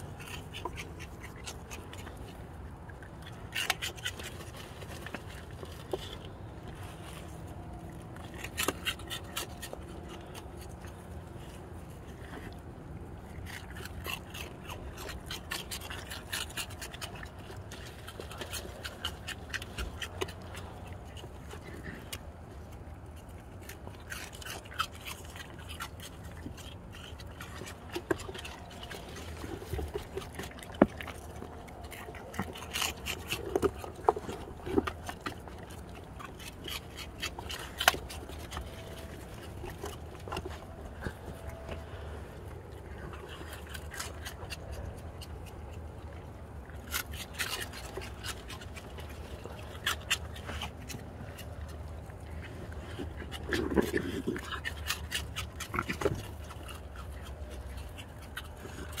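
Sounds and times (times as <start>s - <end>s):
raccoons chewing and clicking: 0.0s - 59.0s.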